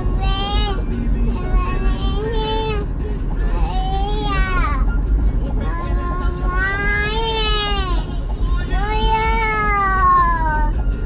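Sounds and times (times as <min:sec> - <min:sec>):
toddler girl singing: 0:00.0 - 0:02.9, 0:03.6 - 0:04.9, 0:05.6 - 0:08.1, 0:08.7 - 0:10.8
car rumble: 0:00.0 - 0:11.0.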